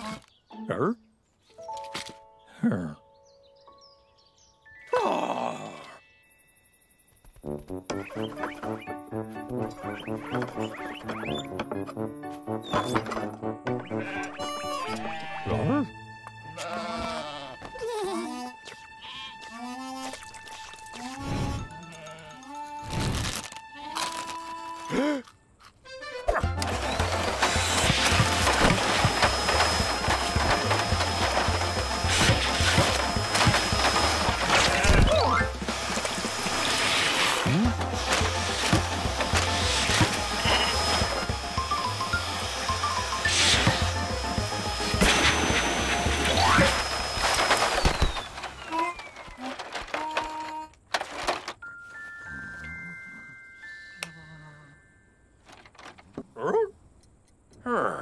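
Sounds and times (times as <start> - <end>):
upbeat cartoon music: 7.4 - 25.0, 25.8 - 47.4
vacuum cleaner running: 26.6 - 49.2.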